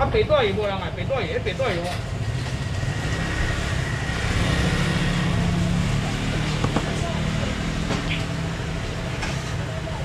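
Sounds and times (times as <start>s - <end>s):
noisy background: 0.0s - 10.0s.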